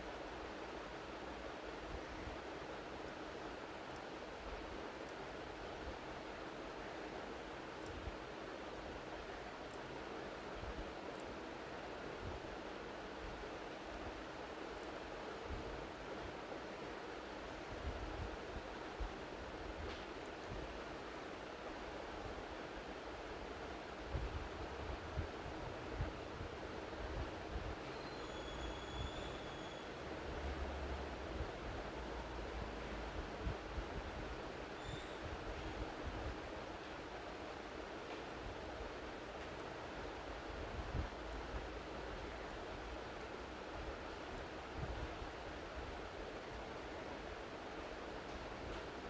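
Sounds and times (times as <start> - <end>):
open microphone hiss and rumble: 0.0 - 49.0
faint high chirps: 27.8 - 30.0, 34.8 - 35.2.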